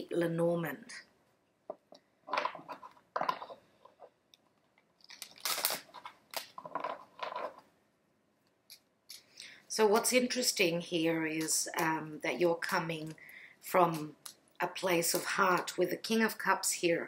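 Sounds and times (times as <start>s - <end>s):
cards shuffling: 5.0s - 7.6s.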